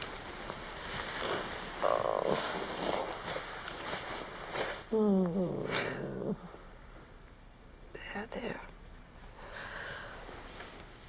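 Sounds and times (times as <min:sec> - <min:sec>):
woman moaning: 0:04.9 - 0:06.5.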